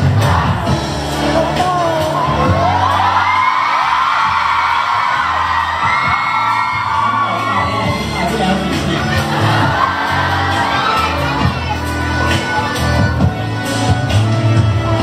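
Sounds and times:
crowd cheering and shrieking: 0:00.0 - 0:15.0
pop backing track: 0:00.0 - 0:15.0
man singing into microphone: 0:01.2 - 0:02.9.

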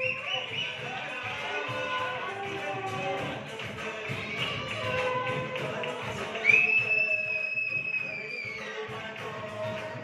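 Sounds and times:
long high whistle: 0:00.0 - 0:00.8, 0:06.4 - 0:08.8.

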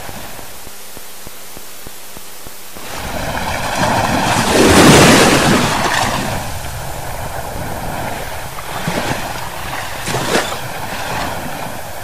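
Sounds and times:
sea wave washing on beach: 0:02.8 - 0:12.0.

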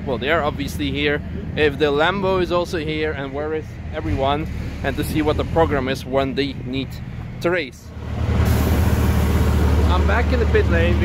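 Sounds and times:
heavy engine running: 0:00.0 - 0:11.0
loud hiss: 0:08.0 - 0:10.5.

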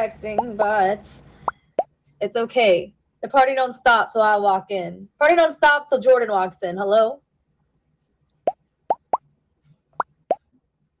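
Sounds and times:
electronic plop sound effects: 0:00.4 - 0:00.6, 0:08.9 - 0:09.2.

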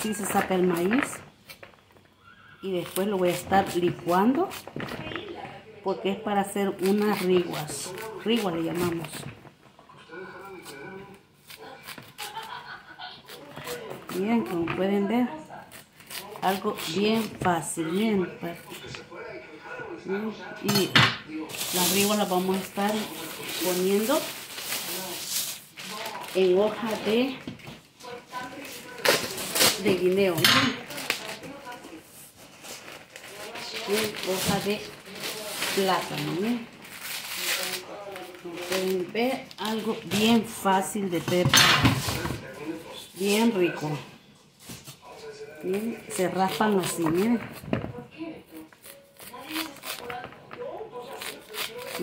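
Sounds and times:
knife scraping corn: 0:06.6 - 0:09.1, 0:10.5 - 0:18.2, 0:21.5 - 0:27.2, 0:45.6 - 0:47.7, 0:48.7 - 0:50.3, 0:51.0 - 0:52.0
plastic package crinkling: 0:21.5 - 0:27.4, 0:28.4 - 0:40.0.

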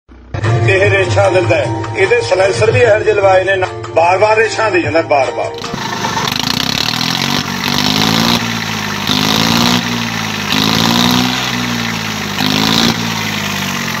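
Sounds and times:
tractor diesel engine revving: 0:05.6 - 0:14.0.

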